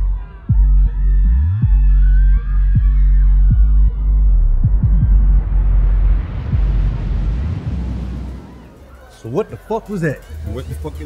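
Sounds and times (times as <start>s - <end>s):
bass-heavy beat with gliding kicks: 0.0s - 8.2s
deep rumble with rising hiss: 1.6s - 9.0s.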